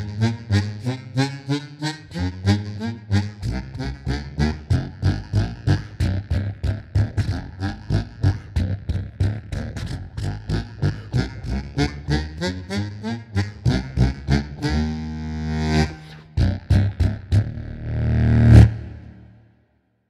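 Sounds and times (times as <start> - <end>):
bass harmonica staccato line: 0.0 - 19.4.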